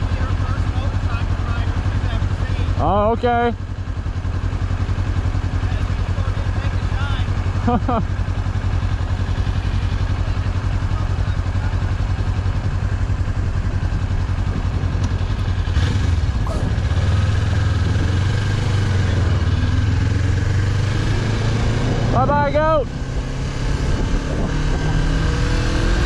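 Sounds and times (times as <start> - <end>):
motorcycle engine idling and pulling away: 0.0 - 26.0.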